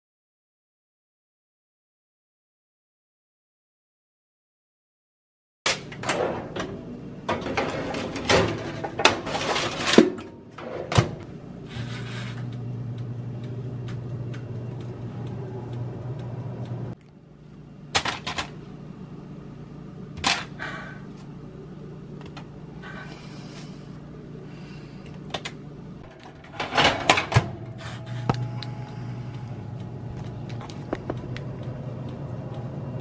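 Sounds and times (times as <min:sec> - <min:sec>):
oven running hum: 0:05.7 - 0:33.0
wire rack and door rattling: 0:05.8 - 0:11.2, 0:26.1 - 0:27.8.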